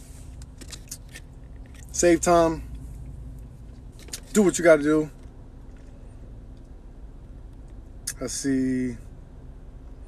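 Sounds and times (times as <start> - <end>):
car interior hum: 0.0 - 10.0.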